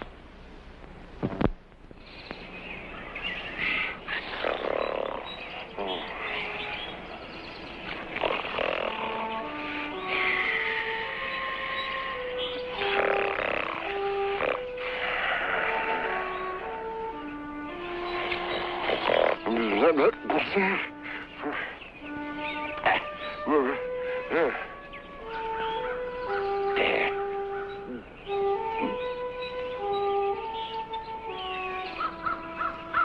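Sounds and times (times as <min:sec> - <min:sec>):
swamp wildlife calls: 0:02.0 - 0:33.0
slow film score melody: 0:02.1 - 0:33.0.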